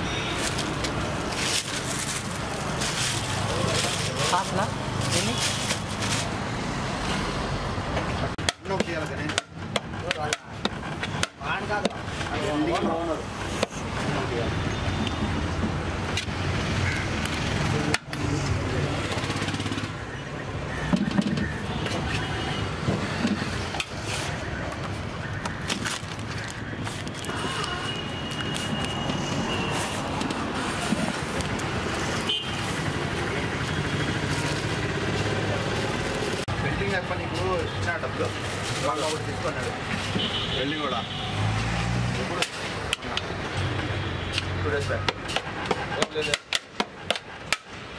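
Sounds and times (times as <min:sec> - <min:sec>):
traffic noise: 0:00.0 - 0:47.9.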